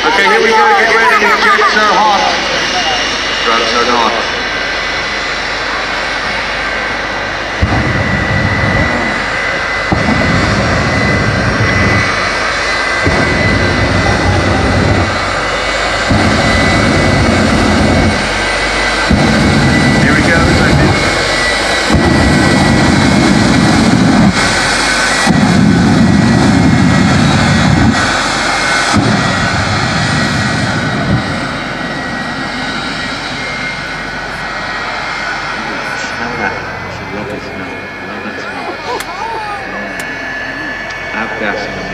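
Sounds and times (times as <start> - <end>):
deep rumble of afterburner bursts: 0.0 - 38.7
jet engine whining: 0.0 - 41.9.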